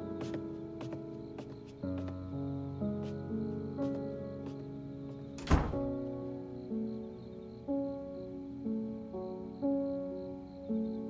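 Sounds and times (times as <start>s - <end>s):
soft music of held chords: 0.0s - 11.0s
door shutting with heavy thunk: 5.4s - 6.0s.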